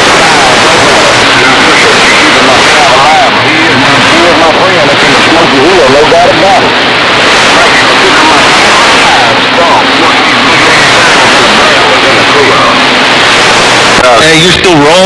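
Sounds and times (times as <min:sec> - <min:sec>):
loud radio static: 0:00.0 - 0:15.0
warbling radio voice: 0:00.0 - 0:15.0.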